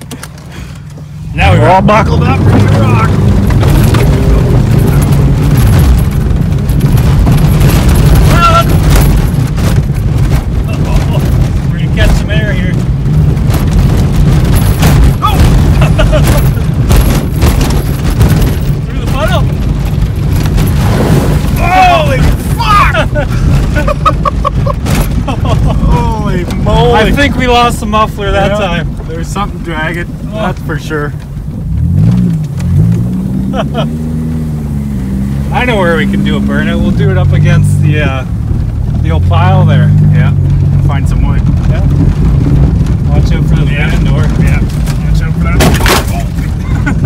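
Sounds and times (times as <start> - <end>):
deep boomy exhaust: 0.0 - 47.0
race car engine running hard: 0.0 - 47.0
people shouting and laughing: 21.6 - 26.3.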